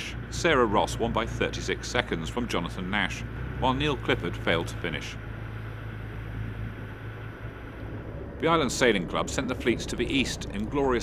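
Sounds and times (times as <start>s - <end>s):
choppy sea water: 0.0s - 11.0s
low hum: 0.0s - 11.0s
wind: 0.0s - 11.0s.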